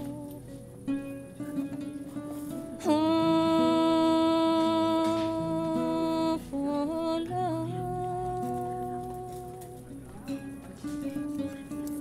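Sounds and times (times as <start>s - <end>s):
woman humming: 0.0s - 0.7s, 2.8s - 9.9s
plucked kora notes: 0.0s - 12.0s.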